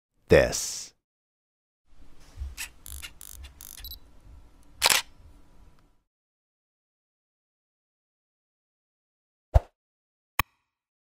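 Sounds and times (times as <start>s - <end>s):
small sharp mechanical clicks: 2.6s - 4.0s, 4.8s - 5.1s
loud camera shutter click: 4.8s - 5.1s.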